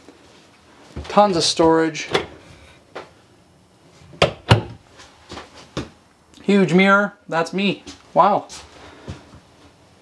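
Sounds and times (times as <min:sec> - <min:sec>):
cabinet door clicks and knocks: 0:04.2 - 0:04.8.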